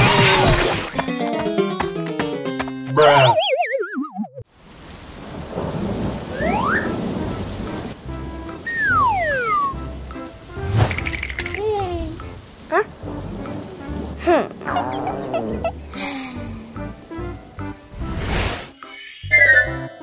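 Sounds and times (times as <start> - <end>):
steady rain: 4.5 - 18.2
low rolls of thunder: 4.8 - 9.8, 12.1 - 16.0.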